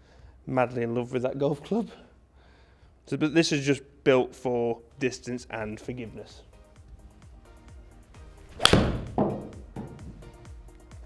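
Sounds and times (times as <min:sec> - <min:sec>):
background music: 0:04.2 - 0:11.0
golf club striking ball: 0:08.5 - 0:10.0
ball thudding on screen: 0:08.5 - 0:10.2.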